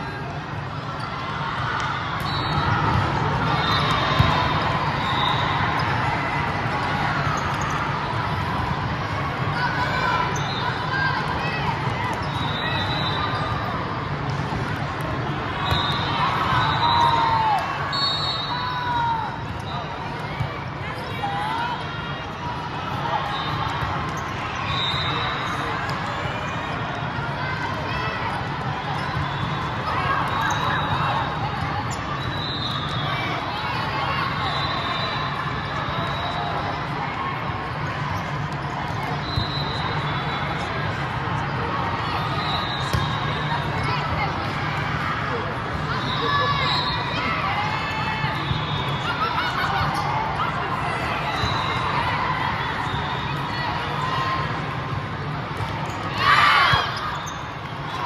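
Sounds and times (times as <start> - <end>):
chatter in a large hall: 0.0 - 58.0
sneakers squeaking on court: 42.6 - 43.9, 56.7 - 57.6.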